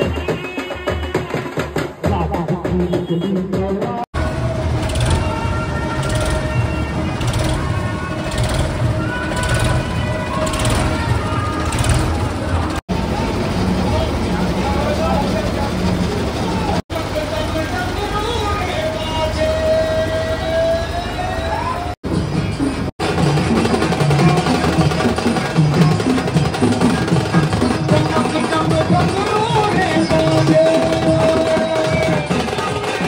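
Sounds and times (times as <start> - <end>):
devotional singing over loudspeakers: 27.9 - 33.0.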